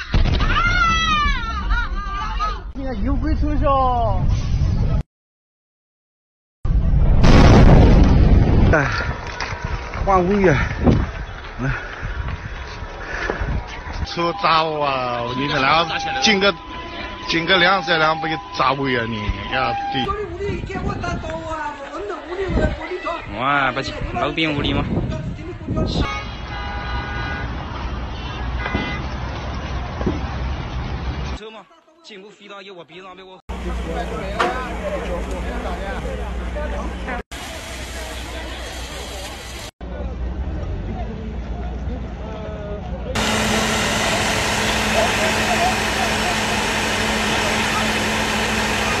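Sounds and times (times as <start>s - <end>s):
wind: 0.0s - 5.0s, 6.7s - 49.0s
emergency vehicles idling: 13.9s - 20.1s, 33.5s - 40.2s, 43.2s - 49.0s
traffic rumble: 25.0s - 31.4s, 33.5s - 49.0s
vehicle horns: 26.0s - 29.2s.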